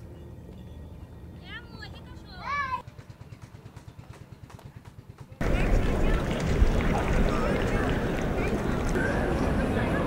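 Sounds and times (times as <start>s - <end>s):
outdoor hubbub: 0.0s - 10.0s
faint voices: 5.2s - 10.0s.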